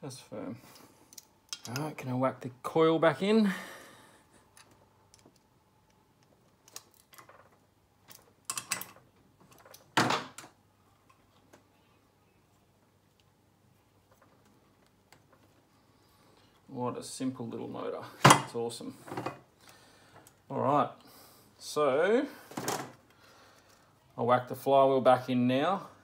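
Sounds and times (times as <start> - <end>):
small parts clicking and knocking: 1.1 - 1.9, 4.5 - 11.2.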